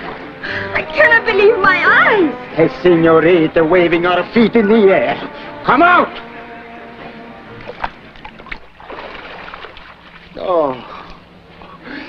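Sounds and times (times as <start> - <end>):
background music: 0.0 - 10.3
pool water sloshing and splashing: 7.4 - 10.7.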